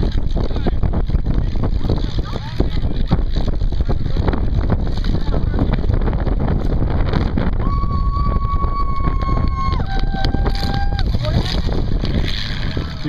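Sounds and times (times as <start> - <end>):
car engines: 0.0 - 7.6, 8.8 - 13.0
wind rumbling on microphone: 0.0 - 13.0.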